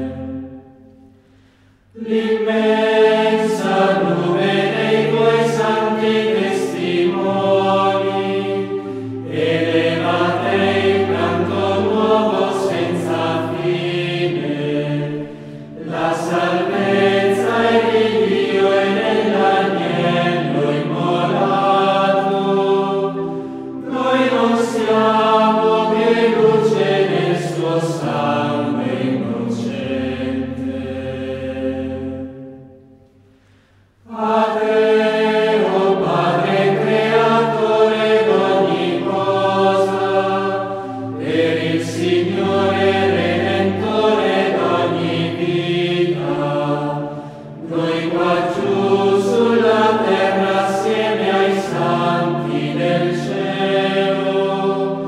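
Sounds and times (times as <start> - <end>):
choir singing slow chant: 0.0 - 55.0.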